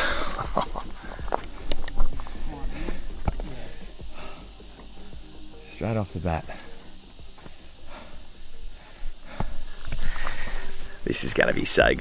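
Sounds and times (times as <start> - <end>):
footsteps on rock and gravel: 0.4 - 5.2, 9.2 - 12.0.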